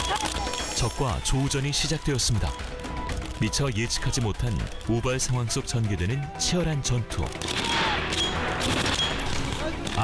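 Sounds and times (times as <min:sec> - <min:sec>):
small-arms and machine-gun fire: 0:07.4 - 0:10.0.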